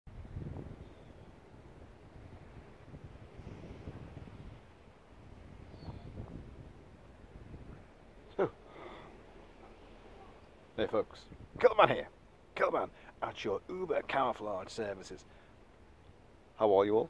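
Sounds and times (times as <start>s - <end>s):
wind buffeting microphone: 0.1s - 14.2s.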